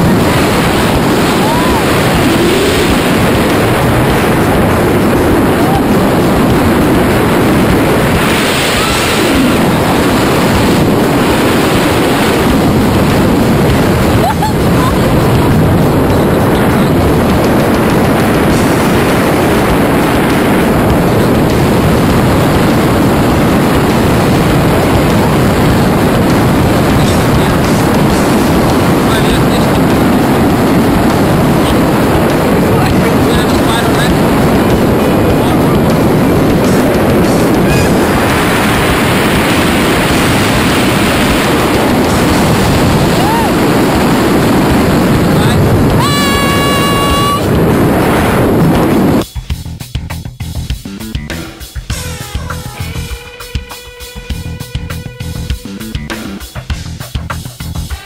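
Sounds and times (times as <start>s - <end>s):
wind rushing over microphone: 0.0s - 49.3s.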